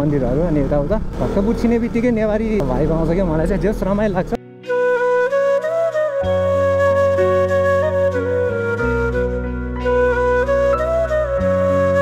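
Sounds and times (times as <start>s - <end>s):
man talking: 0.0s - 4.4s
motorcycle engine rumble: 0.0s - 4.4s.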